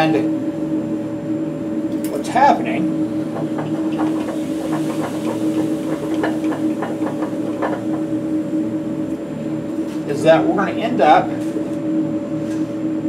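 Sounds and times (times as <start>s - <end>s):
fume hood blower humming: 0.0s - 13.0s.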